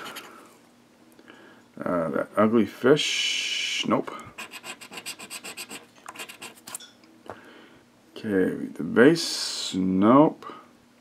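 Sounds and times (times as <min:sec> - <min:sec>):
scratching lottery ticket: 0:04.4 - 0:06.8.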